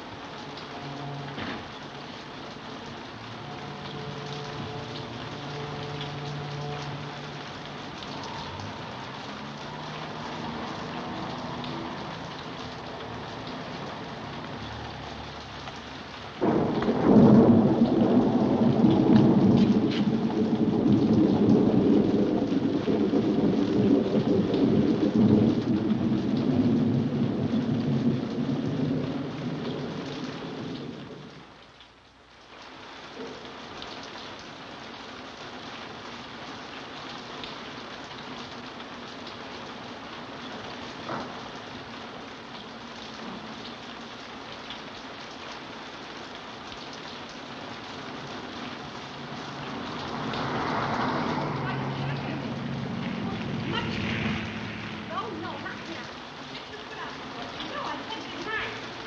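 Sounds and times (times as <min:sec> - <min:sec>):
steady rain: 0:00.0 - 0:59.0
thunder clap rolling: 0:16.4 - 0:31.4, 0:49.2 - 0:56.6.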